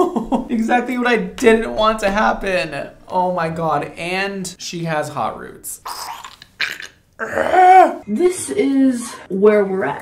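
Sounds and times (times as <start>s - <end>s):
man's cry of disgust: 7.2s - 8.0s.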